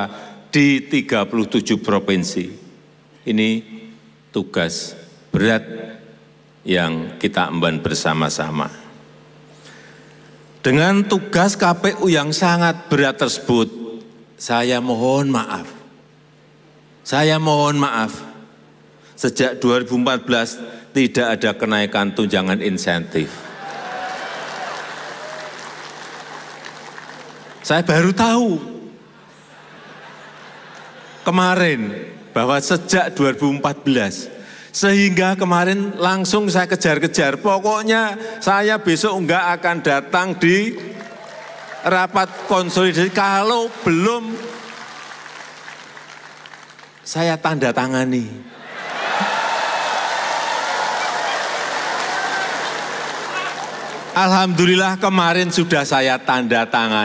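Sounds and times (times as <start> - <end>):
audience applauding: 23.5 - 27.8, 41.0 - 47.1, 48.8 - 54.3.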